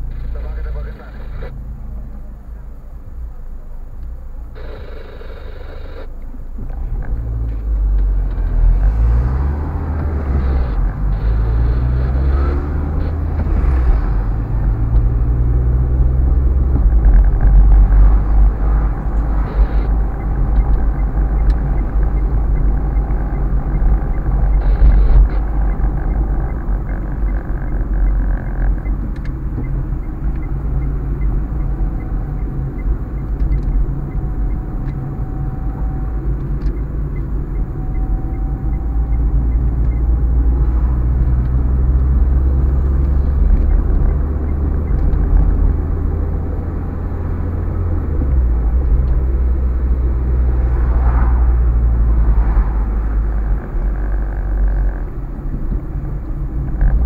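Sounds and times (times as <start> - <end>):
car engine from inside cabin: 0.0 - 57.0
road rumble: 0.0 - 57.0.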